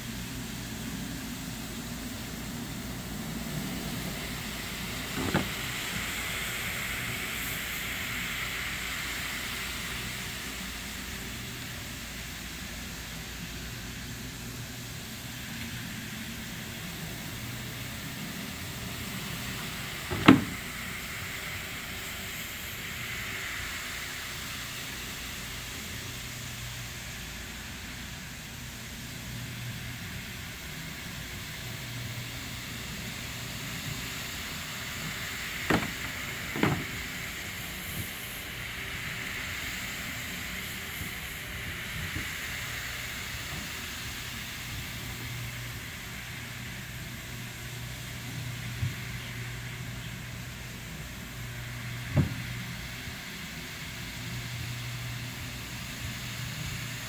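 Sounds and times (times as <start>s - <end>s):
floor machine motor hum: 0.0s - 7.6s, 12.5s - 21.3s, 31.6s - 47.1s
sharp knocks: 5.1s - 5.6s, 20.1s - 20.6s, 35.7s - 37.0s.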